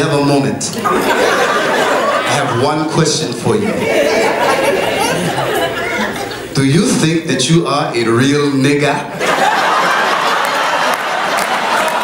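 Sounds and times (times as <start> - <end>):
man talking into microphone: 0.0 - 0.8, 2.2 - 3.9, 6.5 - 9.2
voices chattering: 0.7 - 7.3.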